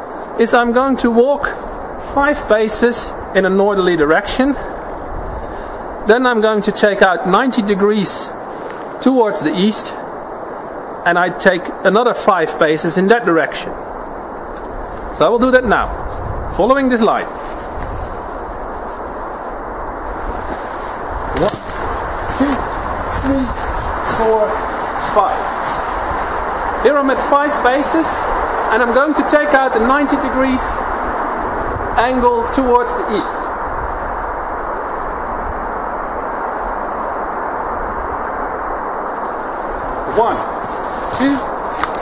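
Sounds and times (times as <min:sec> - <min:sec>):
wind noise on microphone: 0:00.0 - 0:42.0
outdoor rushing noise: 0:13.7 - 0:42.0.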